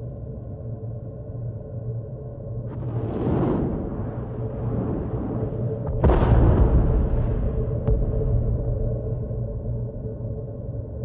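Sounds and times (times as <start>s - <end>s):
steady low drone: 0.0s - 11.0s
low dull rumble: 2.2s - 11.0s.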